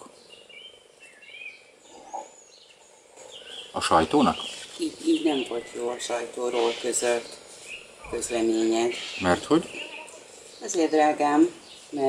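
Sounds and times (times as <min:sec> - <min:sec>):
birds chirping: 0:00.0 - 0:12.0
low steady hiss: 0:00.0 - 0:12.0.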